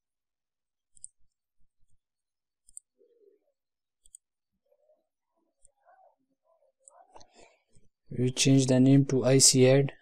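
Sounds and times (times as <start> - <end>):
computer mouse double-click: 4.0 - 4.3.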